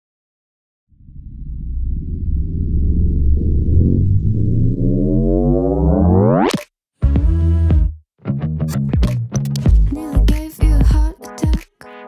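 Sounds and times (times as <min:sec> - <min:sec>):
synthesizer riser: 0:01.0 - 0:06.6.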